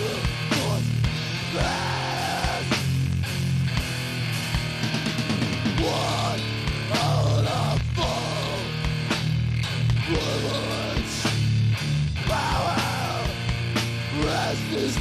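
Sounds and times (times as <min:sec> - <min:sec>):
harsh shouted vocals: 0:00.0 - 0:03.0, 0:05.6 - 0:09.1, 0:09.9 - 0:11.5, 0:12.2 - 0:15.0
distorted guitars and bass: 0:00.0 - 0:15.0.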